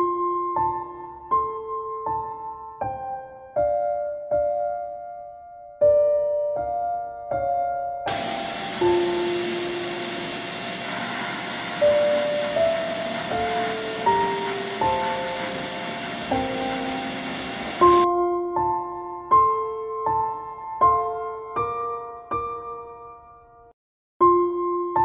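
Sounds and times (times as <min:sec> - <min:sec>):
soft piano music: 0:00.0 - 0:10.0, 0:12.5 - 0:25.0
vacuum cleaner running on carpet: 0:08.1 - 0:18.1.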